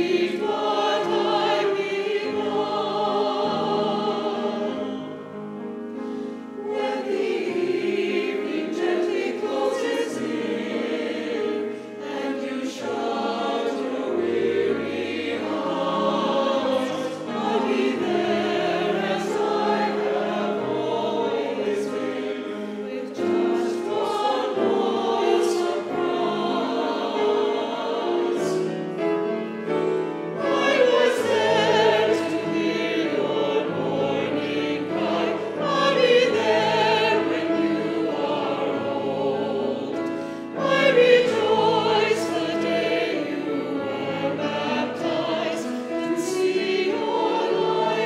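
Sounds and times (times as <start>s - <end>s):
choir singing in parts: 0.0s - 48.0s.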